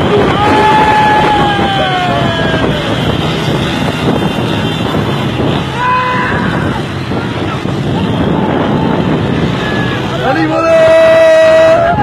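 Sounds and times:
motorbike and rickshaw engines: 0.0 - 12.0
wind on microphone: 0.0 - 12.0.

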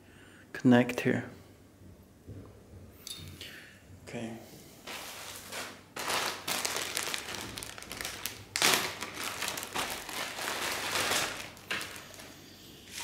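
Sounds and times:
plastic bags crinkling: 4.8 - 13.0.

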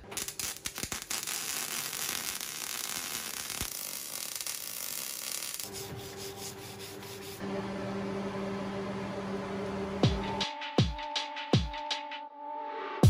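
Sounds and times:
welding arc crackling hiss: 0.0 - 6.6.

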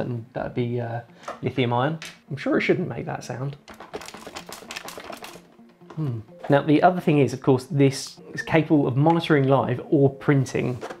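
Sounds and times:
loose part rattling in plastic case: 3.7 - 5.5.

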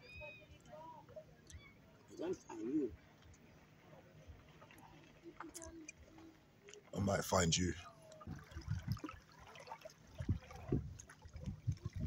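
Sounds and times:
lake waves lapping: 2.2 - 12.0.

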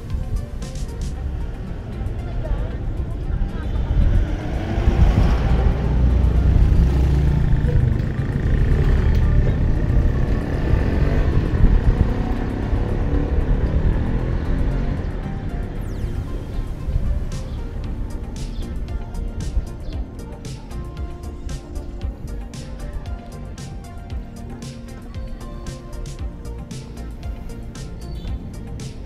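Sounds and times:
background music: 0.0 - 29.0
motorcycle tricycle engine running: 0.0 - 29.0
street traffic: 0.0 - 29.0.

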